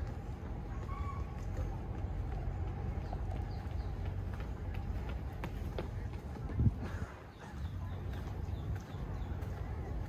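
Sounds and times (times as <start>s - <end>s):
footsteps on concrete: 0.0s - 10.0s.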